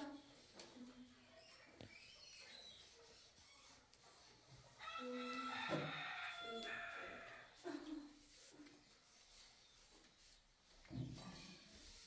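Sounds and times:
rooster crowing: 0:04.8 - 0:07.4.

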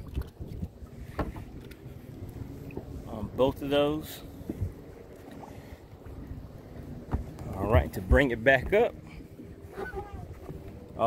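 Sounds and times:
choppy water around boat: 0:00.0 - 0:11.0
low wind: 0:00.0 - 0:11.0.

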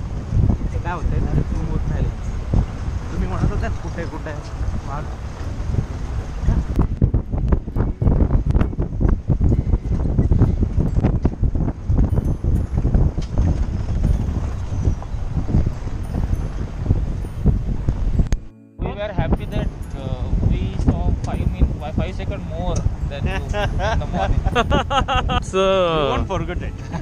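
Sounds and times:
jeep driving on dirt track: 0:00.0 - 0:18.3
wind buffeting microphone: 0:00.0 - 0:27.0.

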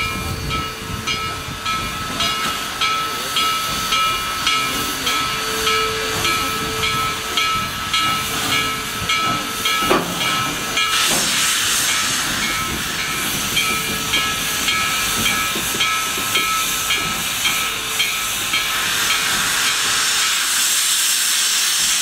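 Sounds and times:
locomotive bell ringing: 0:00.0 - 0:20.6
steam locomotive hissing steam: 0:00.0 - 0:22.0.

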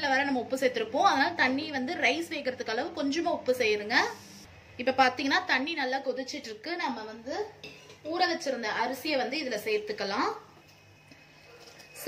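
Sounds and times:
woman talking: 0:00.0 - 0:04.2, 0:04.8 - 0:10.6
steel cookware clinking: 0:07.6 - 0:08.1.

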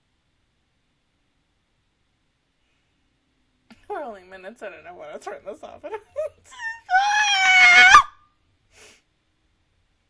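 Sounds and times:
woman's high-pitched cry: 0:06.1 - 0:08.2.

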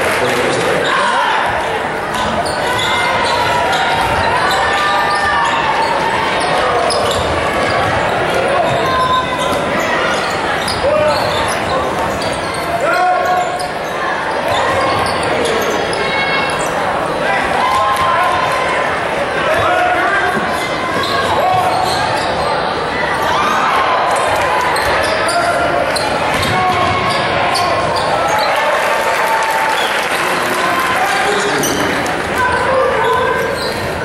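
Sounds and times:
voices echoing in a hall: 0:00.0 - 0:34.0.

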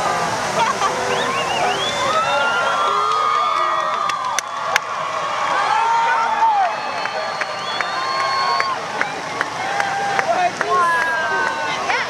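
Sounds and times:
crowd voices talking: 0:00.0 - 0:12.0
fountains spraying water: 0:00.0 - 0:12.0.

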